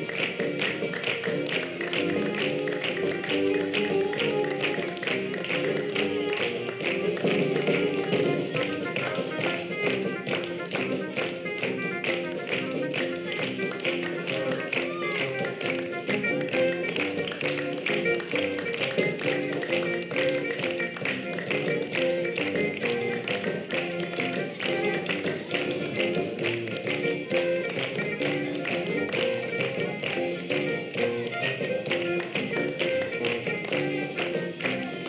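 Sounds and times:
children clapping in rhythm: 0.0s - 35.0s
song music: 0.0s - 35.0s.

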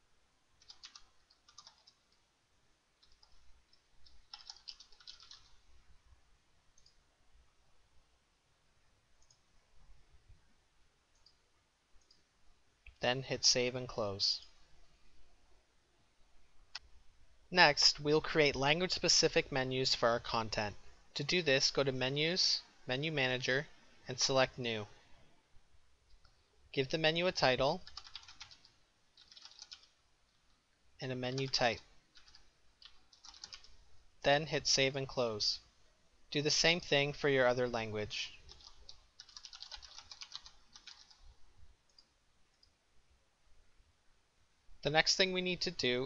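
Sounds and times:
keyboard typing: 0.6s - 2.2s, 3.0s - 5.6s, 27.7s - 30.0s, 31.2s - 33.8s, 38.4s - 41.3s
faint mouse clicks: 6.7s - 7.0s, 9.2s - 9.5s, 11.1s - 11.4s, 12.0s - 13.0s, 41.9s - 42.8s.

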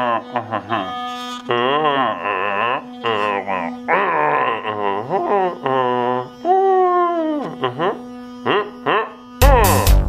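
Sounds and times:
electric toothbrush buzzing: 0.0s - 10.0s
wavering voice-like melody: 0.0s - 10.0s.

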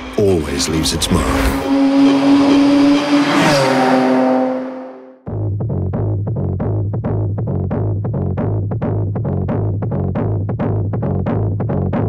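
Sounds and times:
car engine at high revs: 0.0s - 5.2s
rushing noise: 0.0s - 5.2s.

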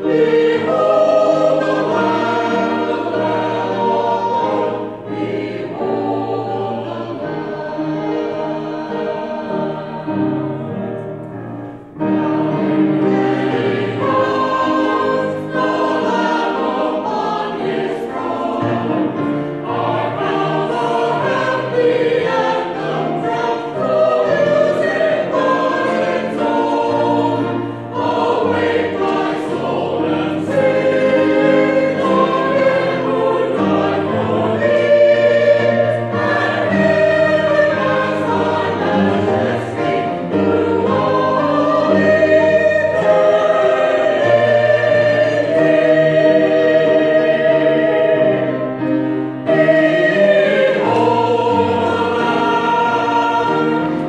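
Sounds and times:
grand piano: 0.0s - 54.0s
mixed choir singing: 0.0s - 54.0s.

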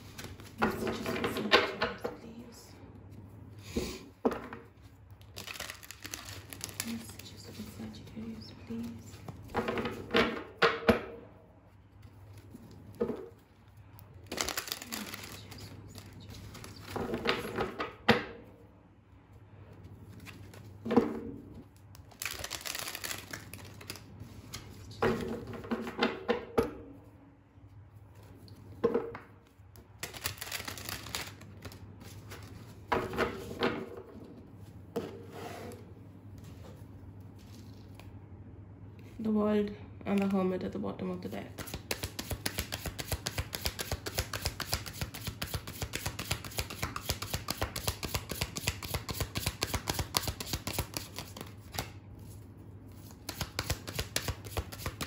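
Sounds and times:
cards being shuffled by hand: 0.0s - 1.5s, 4.6s - 10.4s, 11.6s - 17.8s, 19.7s - 25.9s, 28.0s - 35.8s, 36.4s - 38.2s, 41.4s - 55.0s
cards clicking together: 22.0s - 24.0s, 30.0s - 31.8s, 41.6s - 51.9s, 53.2s - 55.0s.

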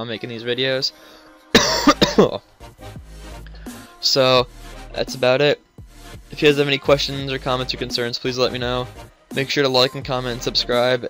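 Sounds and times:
man coughing: 1.5s - 2.4s.

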